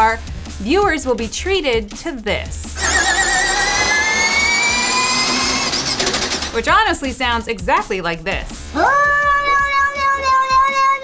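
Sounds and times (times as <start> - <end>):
electric race car whine: 2.8 - 6.6.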